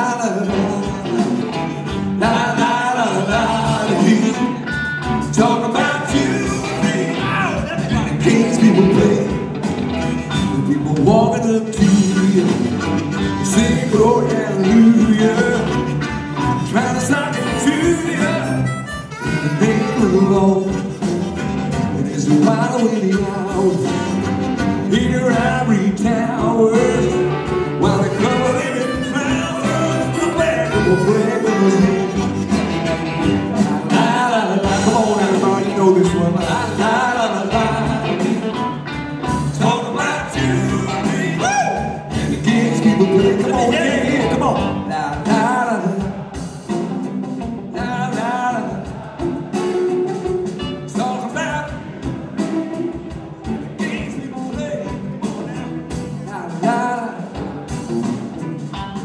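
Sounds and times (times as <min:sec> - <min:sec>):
bending lead guitar line: 0:00.0 - 0:59.0
electric blues band playing: 0:00.0 - 0:59.0
amplified blues harmonica: 0:11.9 - 0:22.1, 0:26.5 - 0:34.1.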